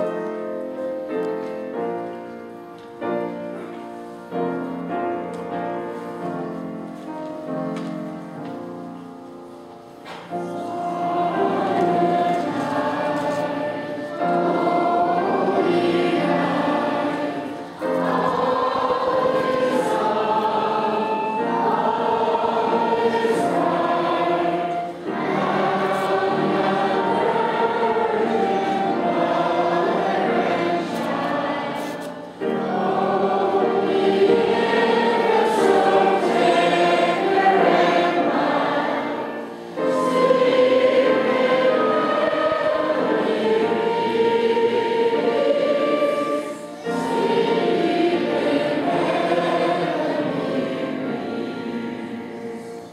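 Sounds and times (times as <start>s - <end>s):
choir singing a hymn: 0.0s - 52.9s.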